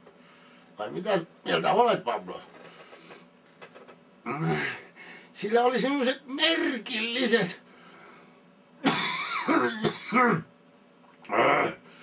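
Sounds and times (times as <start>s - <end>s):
man coughing: 8.8s - 10.5s.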